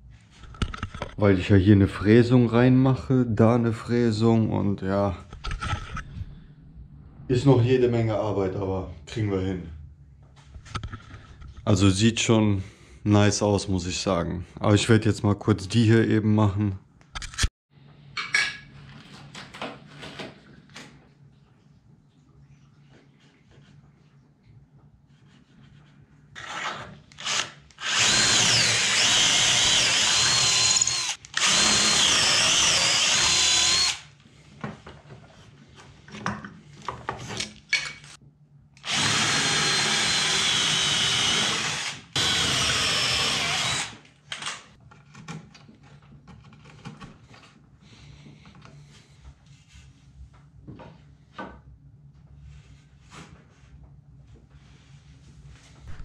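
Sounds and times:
cordless drill boring into wood: 0:27.2 - 0:34.1, 0:38.8 - 0:44.6.

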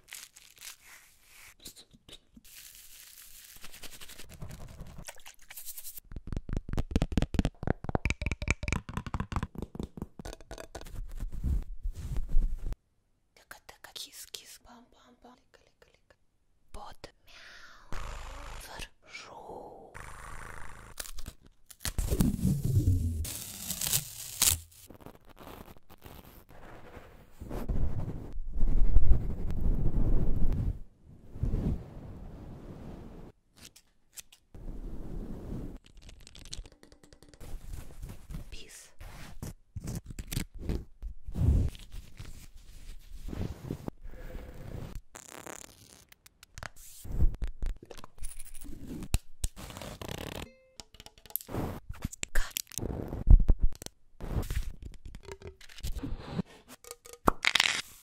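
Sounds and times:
soft rustling and brushing: 0:11.1 - 0:12.8.

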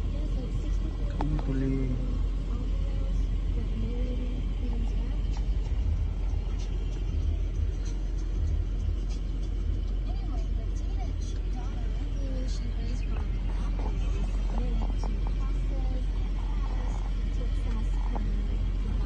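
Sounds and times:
car engine rumble inside cabin: 0:00.0 - 0:19.0
faint voices: 0:00.0 - 0:19.0.

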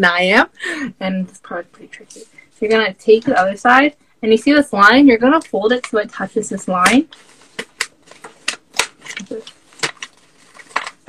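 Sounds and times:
paper being folded and creased: 0:07.1 - 0:11.0.

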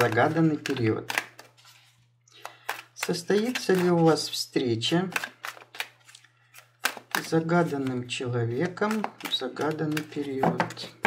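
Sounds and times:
cards being shuffled: 0:00.0 - 0:11.0.

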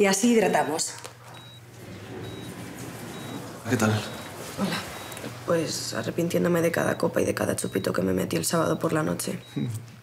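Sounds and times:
low steady hum: 0:00.0 - 0:09.8
patient monitor beeping: 0:00.5 - 0:09.8.

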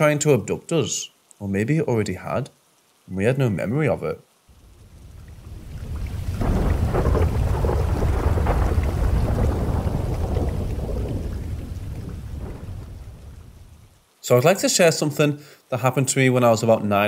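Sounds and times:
steady rain: 0:00.0 - 0:17.0
thunder rumble: 0:04.5 - 0:14.0.

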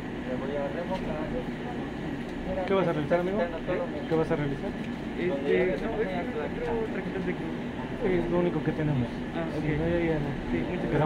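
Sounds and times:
indistinct talking voices: 0:00.0 - 0:11.0
low background hum: 0:00.0 - 0:11.0.

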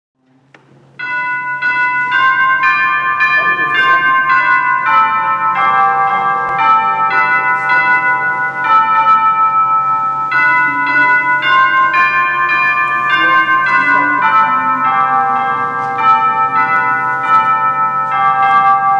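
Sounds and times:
bells ringing: 0:00.9 - 0:18.9.

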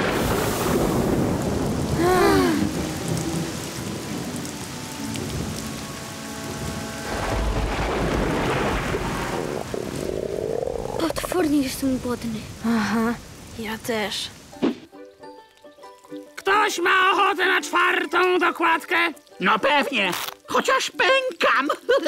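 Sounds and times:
deep thunder rumble: 0:00.0 - 0:04.6, 0:06.6 - 0:13.6
heavy rain pouring: 0:00.0 - 0:15.1.

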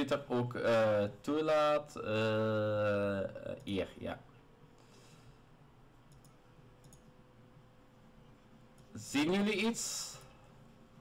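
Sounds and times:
faint steady hum: 0:00.0 - 0:11.0
faint clicks: 0:06.0 - 0:07.2.

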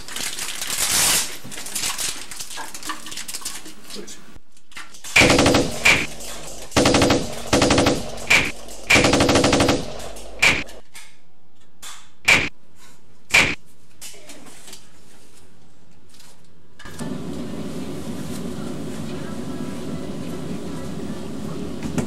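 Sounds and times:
automatic gunfire bursts: 0:05.2 - 0:10.8
single gunshots: 0:05.2 - 0:10.8, 0:12.3 - 0:12.5, 0:13.3 - 0:13.6.

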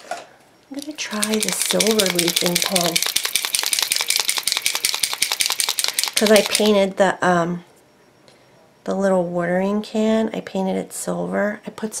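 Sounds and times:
paint pen ball rattling: 0:00.7 - 0:06.8.

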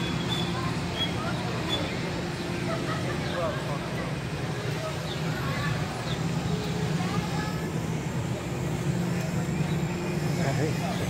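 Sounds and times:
faint voices: 0:00.0 - 0:11.0
low mechanical hum: 0:00.0 - 0:11.0.

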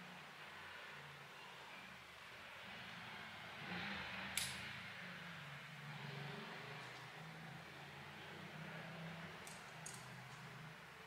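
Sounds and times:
sharp click: 0:04.4 - 0:04.6.

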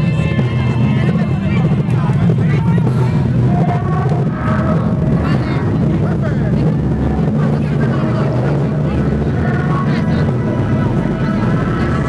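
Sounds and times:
crowd voices: 0:00.0 - 0:12.0
loud low bass: 0:00.0 - 0:12.0.

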